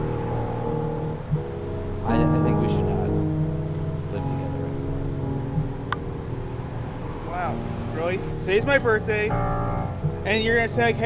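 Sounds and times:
soft piano music: 0:00.0 - 0:11.0
street traffic: 0:00.0 - 0:11.0
vehicle going by: 0:00.0 - 0:11.0.

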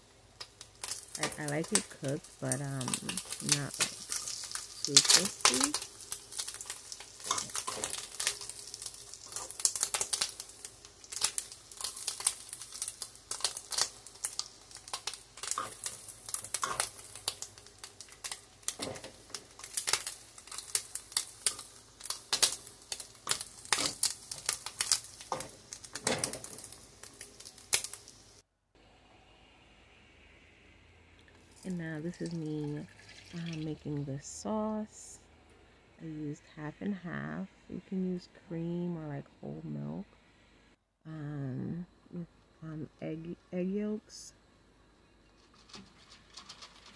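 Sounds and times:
bacon frying in a skillet: 0:00.0 - 0:28.4, 0:31.4 - 0:33.7.

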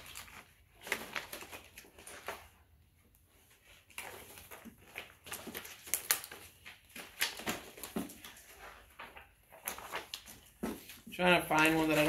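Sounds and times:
paper sheets rustling: 0:00.0 - 0:12.0.

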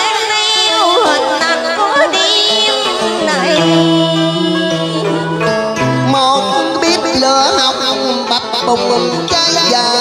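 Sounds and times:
plucked string instrument bending notes: 0:00.0 - 0:10.0
traditional music backing track: 0:00.0 - 0:10.0
man singing: 0:03.1 - 0:10.0.

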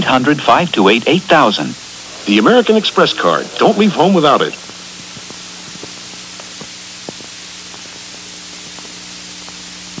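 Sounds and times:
low steady hum: 0:00.0 - 0:10.0
steady tape hiss: 0:00.0 - 0:10.0.

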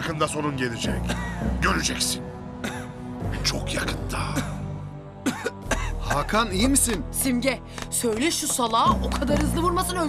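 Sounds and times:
background music: 0:00.0 - 0:10.0
man coughing and choking: 0:01.0 - 0:01.4, 0:02.6 - 0:03.4, 0:04.2 - 0:06.2.

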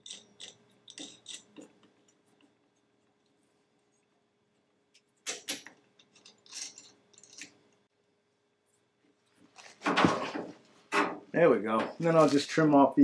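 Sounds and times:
small metal clinks and rattles: 0:00.0 - 0:02.2, 0:05.4 - 0:07.8.

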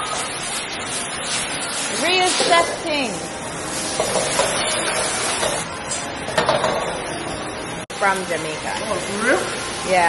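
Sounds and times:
stir-fry sizzling in wok: 0:00.0 - 0:10.0.

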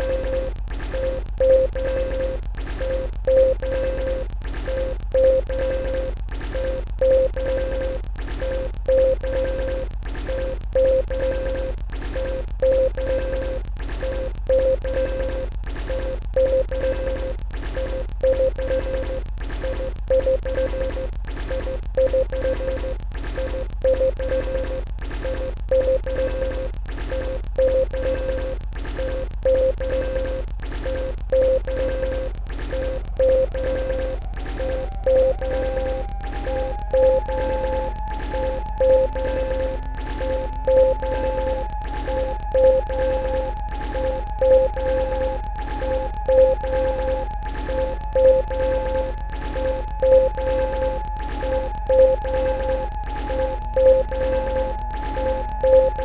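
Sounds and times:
drum machine beat: 0:00.0 - 0:56.0.

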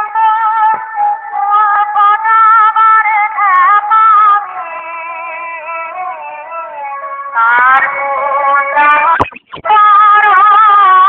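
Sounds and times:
wavering melody music: 0:05.6 - 0:10.3.

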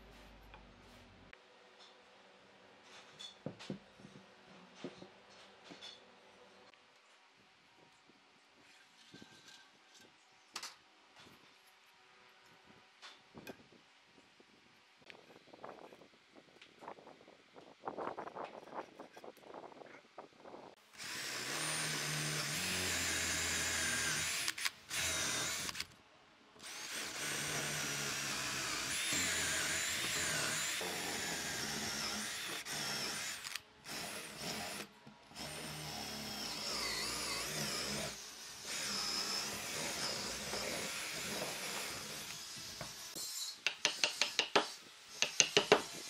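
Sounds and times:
cordless drill boring into wood: 0:21.0 - 0:25.9, 0:26.6 - 0:43.1.

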